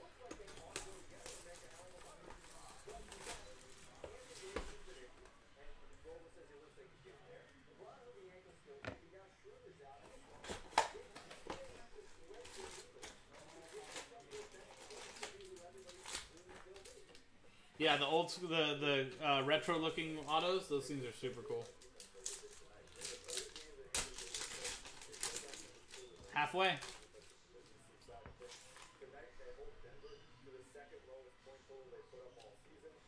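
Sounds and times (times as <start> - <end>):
foil packs rustling and crinkling: 10.5 - 17.2, 19.9 - 27.2.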